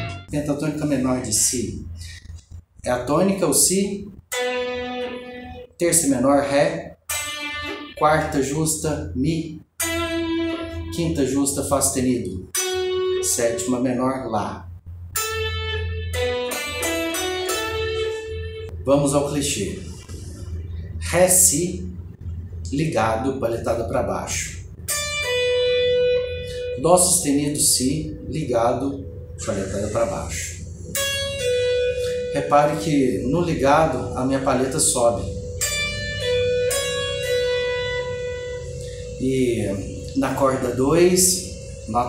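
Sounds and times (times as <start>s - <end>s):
electric guitar picked notes: 0.0s - 0.4s, 4.0s - 11.5s, 12.5s - 14.0s, 14.8s - 18.8s, 24.6s - 42.0s.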